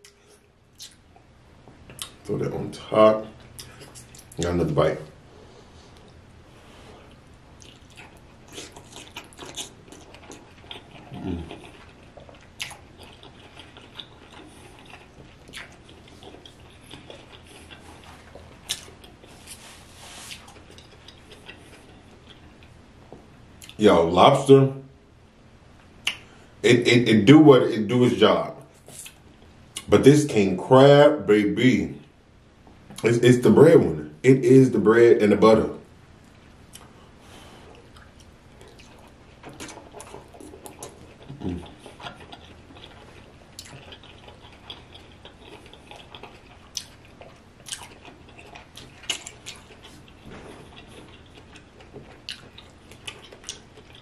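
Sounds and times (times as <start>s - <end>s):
wet mouth eating sounds: 0.0s - 1.1s, 1.9s - 2.3s, 3.3s - 4.4s, 7.0s - 22.8s, 36.7s - 54.0s
chewing food: 0.0s - 2.4s, 3.2s - 4.5s, 5.6s - 23.8s, 36.2s - 54.0s
wet mouth clicks and smacks: 26.0s - 26.3s.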